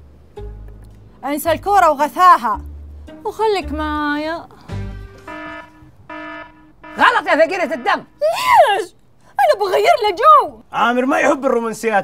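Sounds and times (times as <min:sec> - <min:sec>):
wrong answer buzzer: 0:05.2 - 0:08.2.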